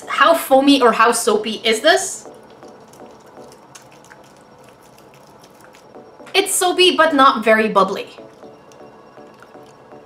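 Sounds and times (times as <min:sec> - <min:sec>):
wet soap squelching in hands: 0:02.2 - 0:06.7.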